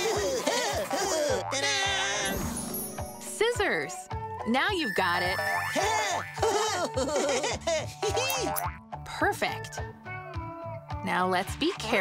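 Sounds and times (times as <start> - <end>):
bouncy children's music: 0.1 - 12.0.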